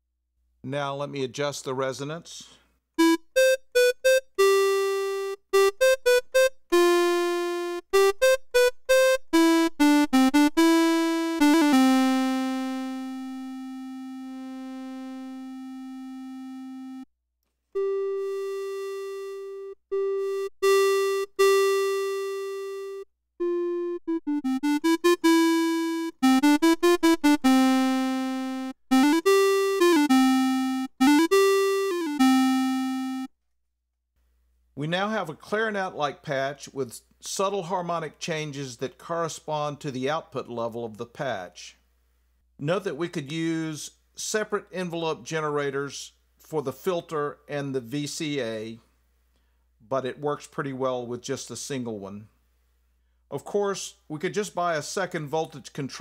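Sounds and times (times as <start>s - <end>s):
synthesizer clarinet-like notes: 3.0s - 17.1s, 17.8s - 33.3s.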